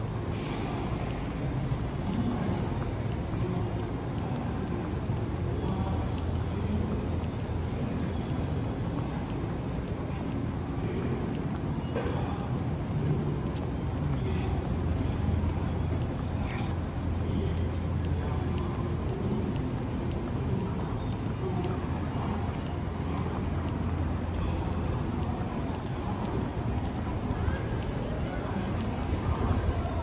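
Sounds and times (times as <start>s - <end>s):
footsteps on tiled platform: 0.0s - 30.0s
train station rumble: 0.0s - 30.0s.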